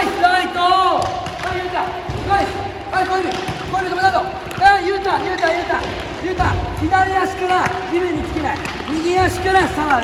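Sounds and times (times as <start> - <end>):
balls thudding on hard floor: 0.9 - 10.0.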